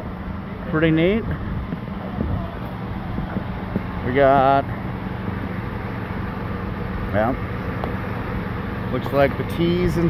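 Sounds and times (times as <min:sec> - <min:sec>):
low mechanical hum: 0:00.0 - 0:10.0
outdoor background noise: 0:00.0 - 0:10.0.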